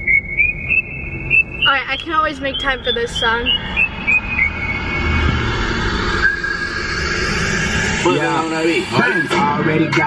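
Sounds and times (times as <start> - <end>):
car driving rumble: 0.0 - 10.0
song on car stereo: 0.0 - 10.0.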